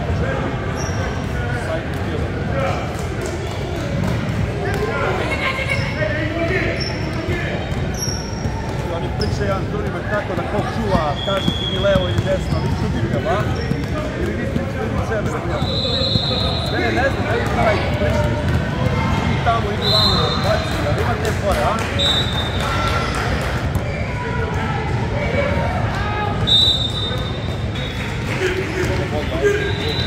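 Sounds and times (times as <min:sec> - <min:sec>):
hubbub of voices: 0:00.0 - 0:30.0
sneakers squeaking: 0:00.7 - 0:01.7, 0:05.1 - 0:25.6, 0:26.4 - 0:30.0.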